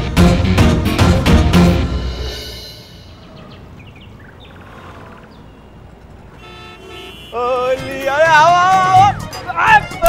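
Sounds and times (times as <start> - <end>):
low steady street rumble: 0.0 - 10.0.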